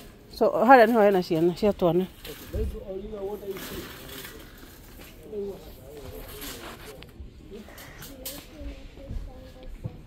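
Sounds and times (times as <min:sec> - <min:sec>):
faint background voice: 0:02.5 - 0:10.0
nearby talk: 0:02.5 - 0:10.0.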